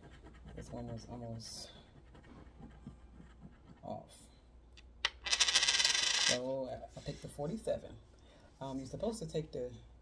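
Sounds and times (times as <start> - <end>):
coin spinning on wooden desk: 5.0 - 6.5.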